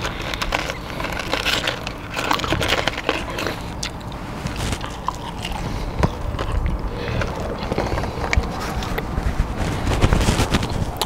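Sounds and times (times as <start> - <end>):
chewing crunchy fries: 0.0 - 11.0
steady low rumble: 0.0 - 11.0.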